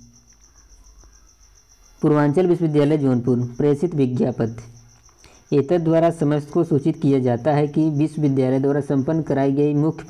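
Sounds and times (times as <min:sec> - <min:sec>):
insect chirping: 0:00.0 - 0:10.0.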